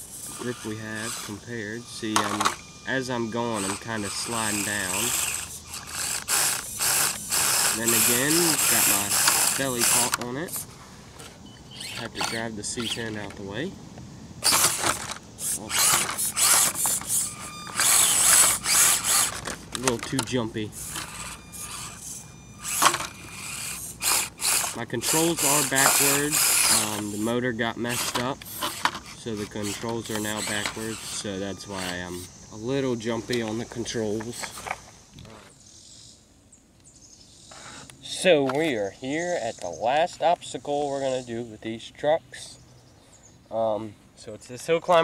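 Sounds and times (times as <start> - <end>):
gear chatter: 0.0 - 13.4, 14.4 - 35.6
small electric motor and gears: 0.0 - 13.4, 14.4 - 35.6
motor whine: 0.0 - 35.6
short high bird chirps: 11.4 - 12.0.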